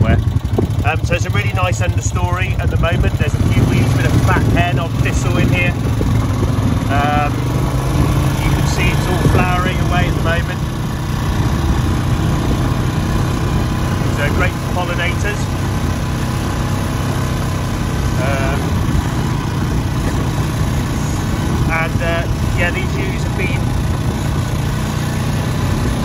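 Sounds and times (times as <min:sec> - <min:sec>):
farm vehicle engine running: 0:00.0 - 0:26.0.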